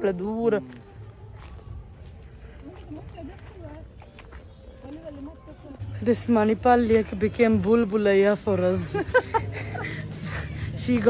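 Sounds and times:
footstep clicks: 0.5 - 5.5.

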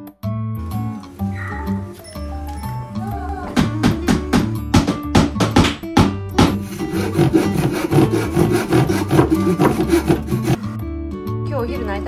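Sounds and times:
background music: 0.0 - 12.0
hand saw cutting wood: 6.4 - 10.8.

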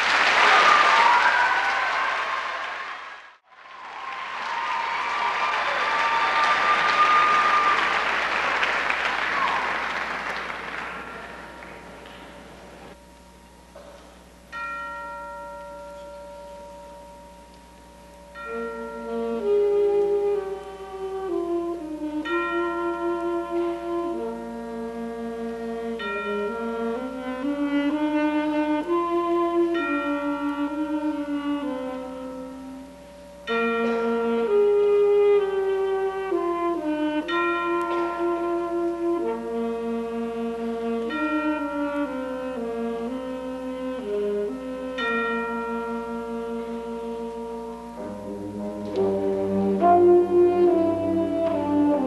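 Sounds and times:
audience applauding: 0.0 - 13.0
concert band sustained notes: 4.8 - 52.0.

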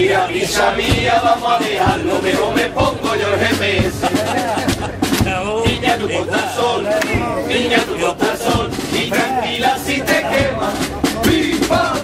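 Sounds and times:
men singing and shouting: 0.0 - 12.0
hand claps: 7.0 - 7.2.

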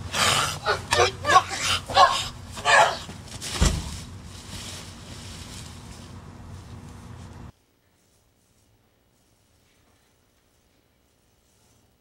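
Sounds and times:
grunts of effort: 0.0 - 3.1
dull thud of impact: 3.5 - 4.0.

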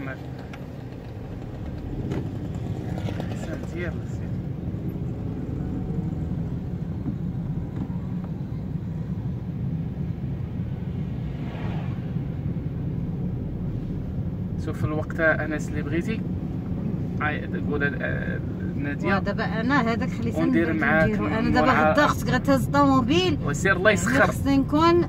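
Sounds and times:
car engine and tyre rumble: 0.0 - 25.0.

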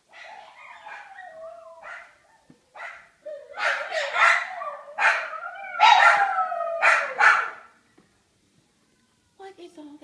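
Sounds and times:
dogs howling: 0.1 - 7.7
sharp dog barks: 6.8 - 7.7.

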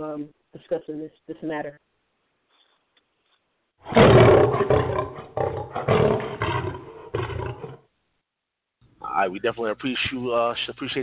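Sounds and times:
lion roaring: 3.8 - 7.9.

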